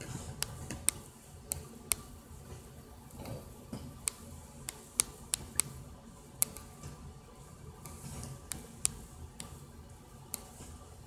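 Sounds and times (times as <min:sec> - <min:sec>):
on-screen keyboard clicks: 0:04.0 - 0:05.8.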